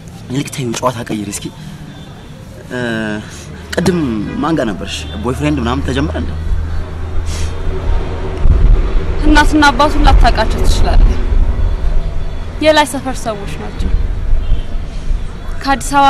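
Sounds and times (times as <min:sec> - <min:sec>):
steady low rumble: 0:06.2 - 0:14.5
woman talking: 0:09.2 - 0:11.2, 0:12.6 - 0:13.8, 0:15.6 - 0:16.0.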